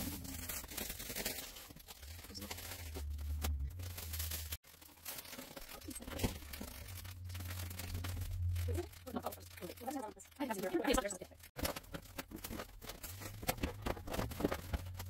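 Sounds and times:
plastic bags and papers rustling: 0.0 - 15.0.

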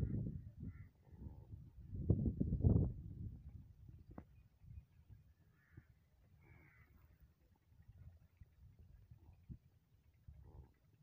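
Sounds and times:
faint distant bird calls: 0.0 - 1.7, 4.0 - 11.0.

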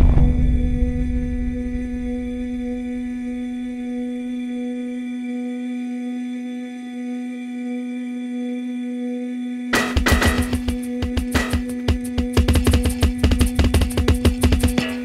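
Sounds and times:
low rumble: 0.0 - 3.9
synthesizer low drone: 0.0 - 9.7.

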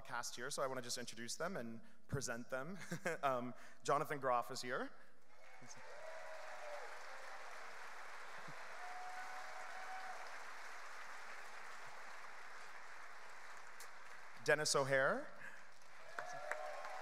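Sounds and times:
audience applauding: 5.4 - 17.0.

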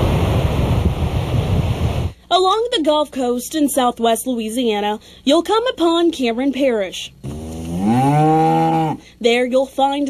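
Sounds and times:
cow mooing: 7.2 - 9.0.

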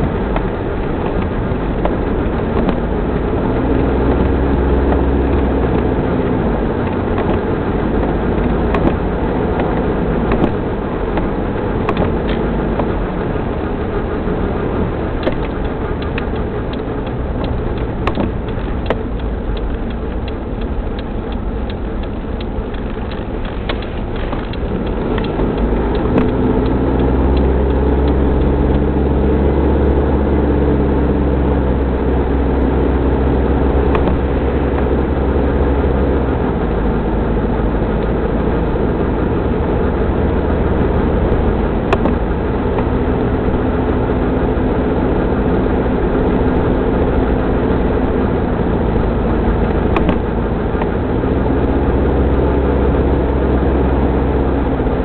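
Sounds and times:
car engine from inside cabin: 0.0 - 55.0
road noise: 0.0 - 55.0
sharp clicks: 15.2 - 28.9, 33.9 - 34.2, 41.9 - 43.0, 49.6 - 51.0.

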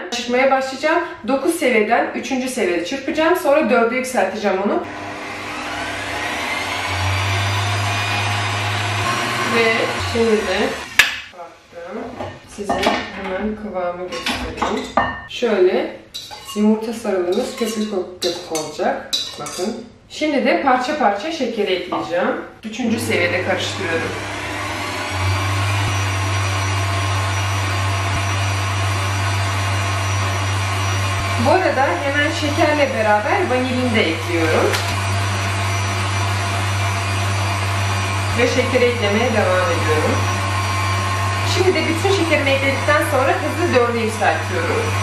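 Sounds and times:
stand mixer motor running: 4.8 - 11.0, 23.0 - 45.0.

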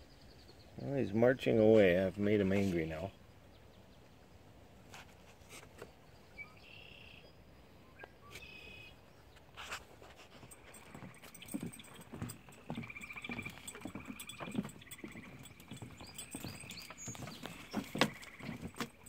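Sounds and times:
footsteps on wooden boardwalk: 9.4 - 19.0.

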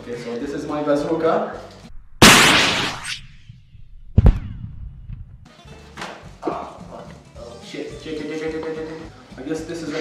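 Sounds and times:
rocket launcher firing blast: 2.0 - 5.4
sharp bang of impact: 2.2 - 5.2.

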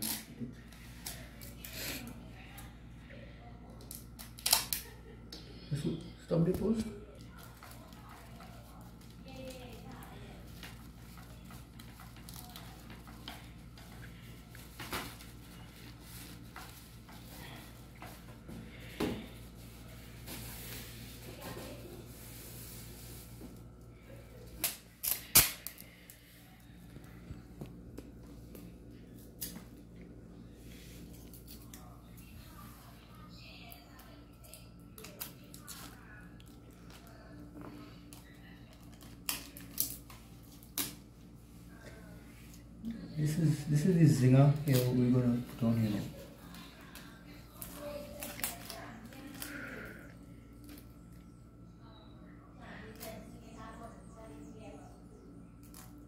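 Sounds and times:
plastic tape crinkling and snapping: 0.0 - 2.7, 3.8 - 5.0, 7.2 - 18.2, 24.5 - 26.2, 27.9 - 29.8, 33.7 - 37.2, 38.1 - 41.1, 44.6 - 49.8
steady low hum: 0.0 - 56.0.

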